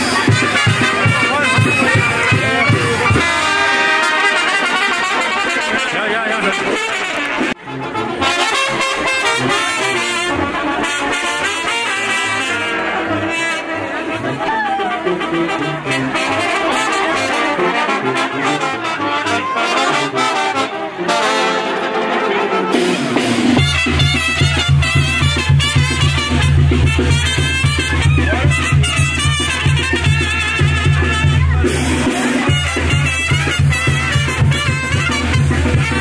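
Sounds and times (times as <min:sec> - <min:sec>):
brass band playing lively tune: 0:00.0 - 0:36.0.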